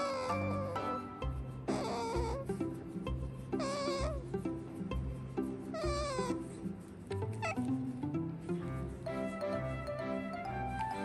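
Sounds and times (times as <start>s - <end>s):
cat meowing: 0.0s - 1.0s, 1.7s - 2.6s, 3.6s - 4.2s, 5.8s - 6.4s
background music with beat: 0.8s - 7.0s, 7.8s - 11.0s.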